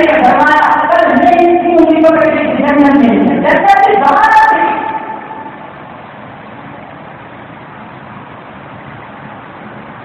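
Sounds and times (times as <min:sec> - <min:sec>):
steady background noise: 0:00.0 - 0:10.0.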